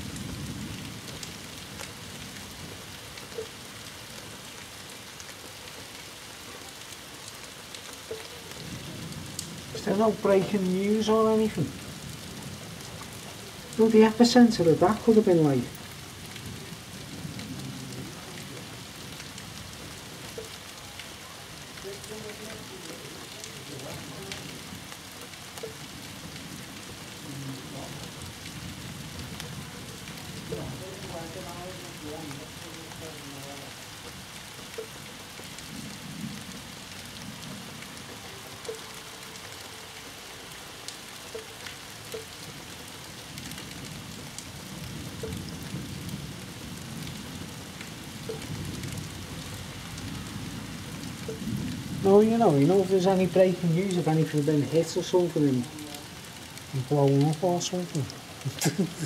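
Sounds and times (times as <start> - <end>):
steady rain hiss: 0.0 - 59.0
thunder rumbling: 8.6 - 20.5, 25.6 - 33.4.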